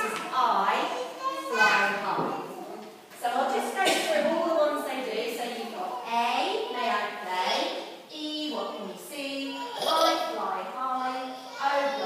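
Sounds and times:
woman speaking in a hall: 0:00.0 - 0:00.9, 0:01.8 - 0:12.0.

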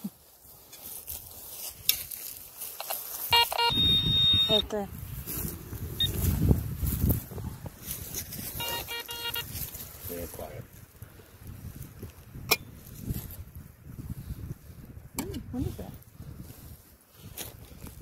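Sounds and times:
rumbling digging handling noise: 0:00.6 - 0:10.0, 0:11.7 - 0:13.5, 0:14.8 - 0:16.4
metal detector beeps: 0:02.8 - 0:04.8, 0:06.0 - 0:06.3, 0:08.4 - 0:09.6
metal detector steady high tone: 0:02.8 - 0:04.9, 0:06.0 - 0:06.3, 0:08.4 - 0:09.7.

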